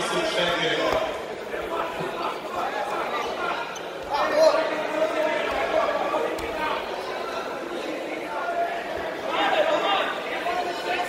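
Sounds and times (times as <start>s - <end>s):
voices echoing in a hall: 0.0s - 11.0s.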